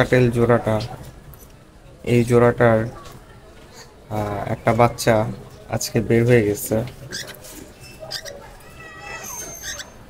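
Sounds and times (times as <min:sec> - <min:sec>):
cockatiel chirps: 0:09.1 - 0:10.0
cockatiel whistled call: 0:09.2 - 0:10.0.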